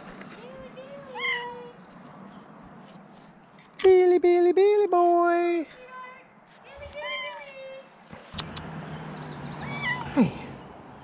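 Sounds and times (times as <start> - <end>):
sharp clicks: 8.2 - 8.8
cat meowing: 9.6 - 10.1.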